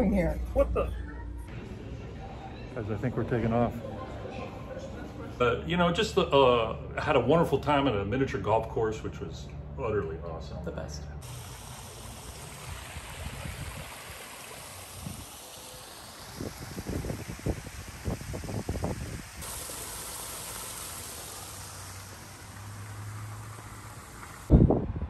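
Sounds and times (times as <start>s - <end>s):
waterfall splashing into pool: 11.2s - 24.5s.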